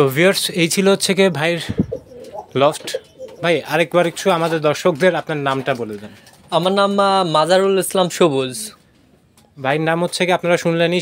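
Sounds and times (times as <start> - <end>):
man talking: 0.0 - 8.8, 9.6 - 11.0
pigeons cooing: 1.6 - 3.9.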